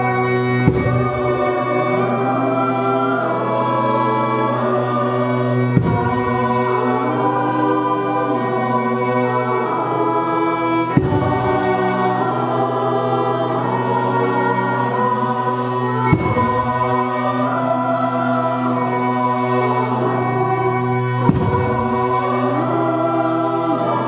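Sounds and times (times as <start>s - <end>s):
choir singing sustained chords: 0.0s - 24.0s
low held drone note: 0.0s - 24.0s
violin accompaniment: 0.0s - 24.0s.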